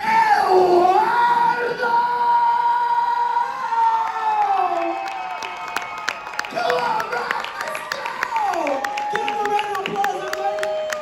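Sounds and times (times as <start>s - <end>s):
crowd cheering: 3.0s - 11.0s
scattered clapping: 4.0s - 11.0s.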